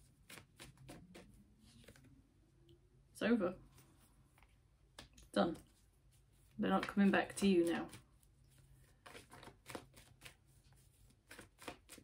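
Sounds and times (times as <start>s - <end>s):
cards rustling and flicking: 0.0s - 2.2s, 6.5s - 12.0s.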